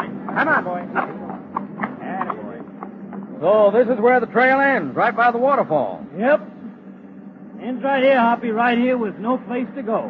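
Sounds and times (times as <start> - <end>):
low hum of old recording: 0.0 - 10.0.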